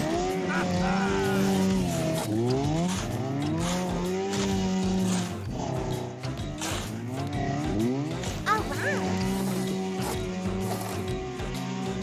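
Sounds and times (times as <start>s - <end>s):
cartoon snowmobile engine revving: 0.0s - 12.0s.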